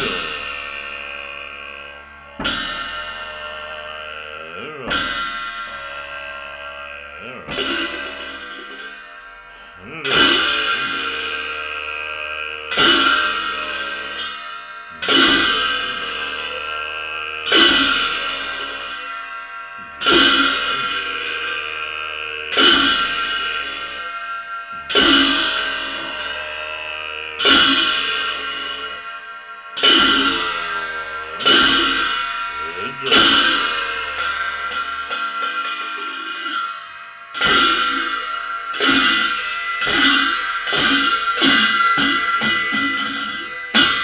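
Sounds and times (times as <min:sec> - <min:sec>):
ringing metallic percussion crashes: 0:00.0 - 0:44.0.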